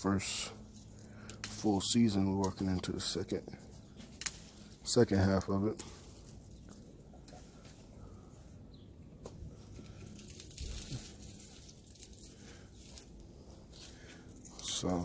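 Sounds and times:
leaves rustling and tearing: 0.0s - 15.0s.

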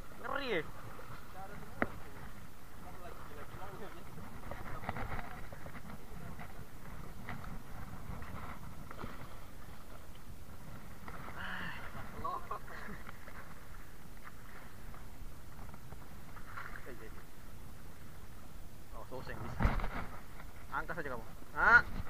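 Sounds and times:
sea noise: 0.0s - 22.0s
wind: 0.0s - 22.0s.

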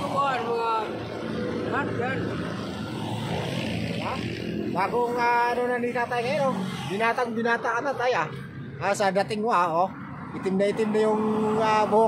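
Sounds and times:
man speaking: 4.0s - 12.0s.

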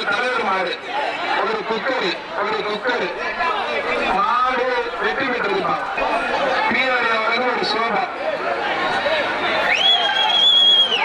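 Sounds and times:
men talking: 0.0s - 9.5s
crowd chatter: 0.0s - 11.0s.

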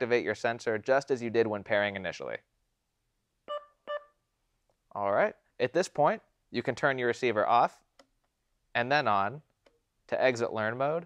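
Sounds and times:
electronic alarm chime tones: 3.5s - 4.2s.

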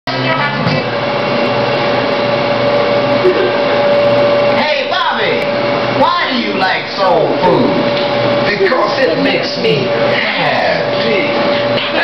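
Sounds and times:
loud machine whir: 0.1s - 12.0s.

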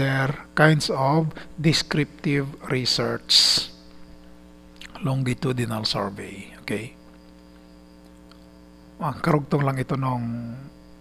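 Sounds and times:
electrical mains hum: 0.0s - 11.0s
faint background hiss: 0.0s - 11.0s.

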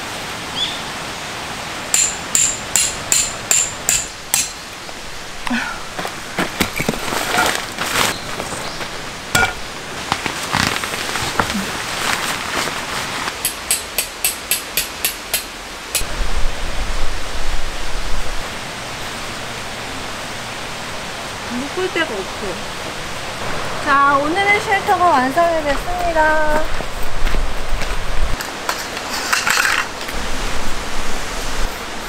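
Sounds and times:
running water: 0.0s - 32.0s
tent fabric rustling and knocks: 6.4s - 8.6s, 9.4s - 13.4s.

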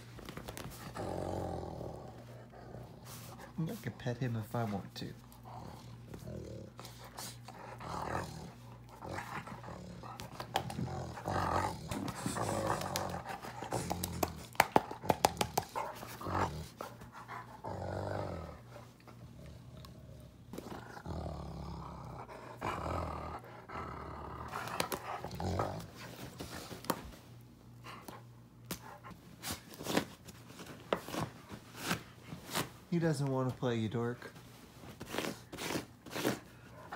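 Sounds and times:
dog growling: 0.7s - 3.6s, 4.6s - 26.7s.

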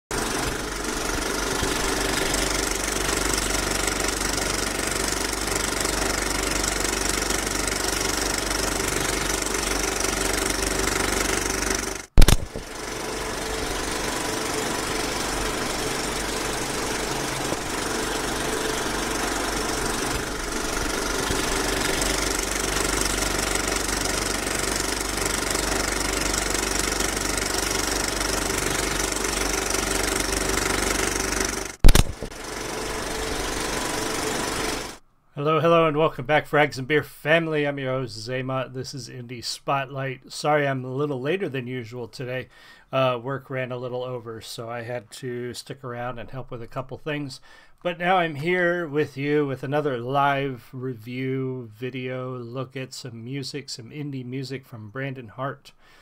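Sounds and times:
film projector clattering: 0.1s - 35.0s
projector sharp click: 12.2s - 12.7s, 31.8s - 32.4s.

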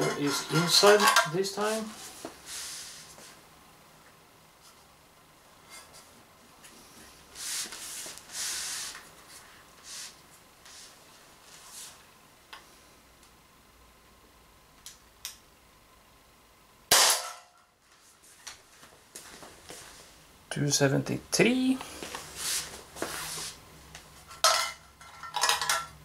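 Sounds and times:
rustling and handling noises: 0.0s - 3.4s, 5.6s - 12.1s, 17.8s - 20.2s, 21.7s - 25.9s.

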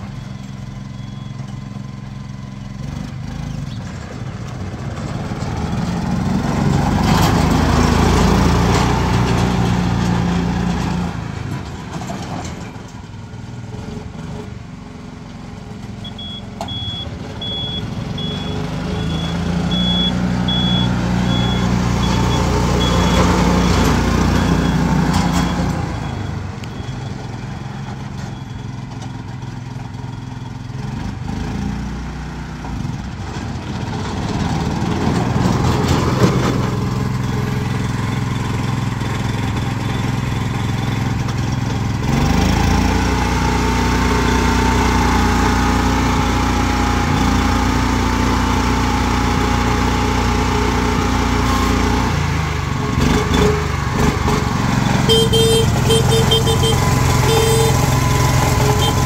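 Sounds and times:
small petrol engine running: 32.8s - 59.0s.

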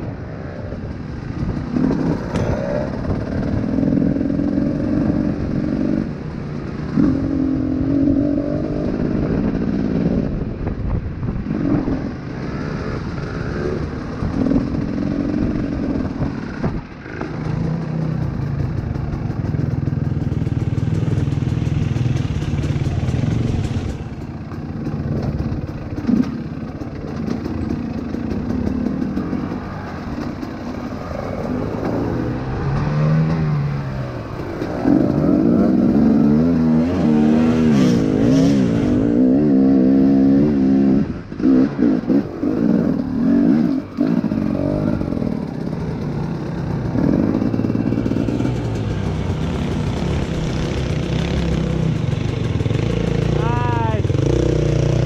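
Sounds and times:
dirt bike engine revving: 19.9s - 55.0s.

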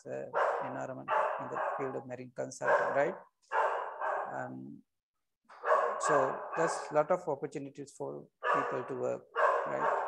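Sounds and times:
man speaking: 0.0s - 3.2s, 6.0s - 10.0s.

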